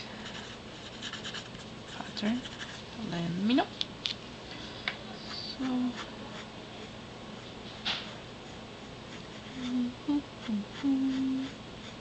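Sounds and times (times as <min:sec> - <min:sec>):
pencil scratching on paper: 0:00.2 - 0:02.8, 0:05.6 - 0:06.9, 0:10.4 - 0:12.0.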